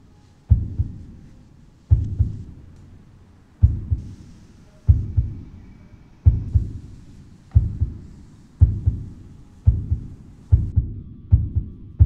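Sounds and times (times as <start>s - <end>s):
heartbeat double thumps: 0.5s - 1.2s, 1.9s - 2.6s, 3.6s - 4.2s, 4.9s - 5.6s, 6.2s - 12.0s.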